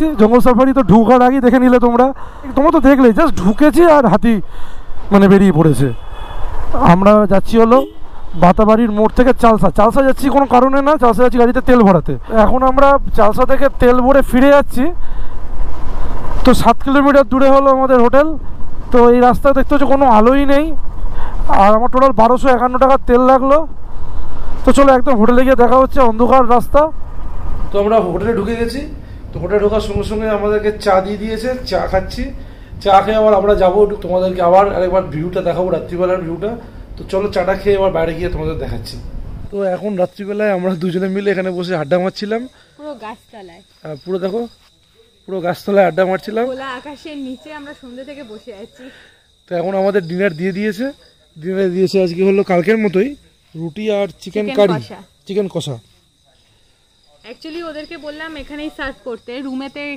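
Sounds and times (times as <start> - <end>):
faint road noise: 0.0 - 59.9
night insects trilling: 0.0 - 59.9
person speaking: 49.6 - 55.9.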